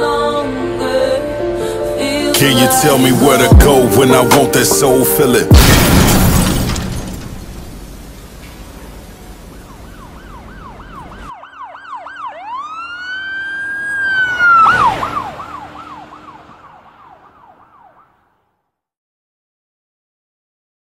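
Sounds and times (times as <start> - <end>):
short loud blast: 5.5 - 7.9
siren wailing: 9.2 - 18.4.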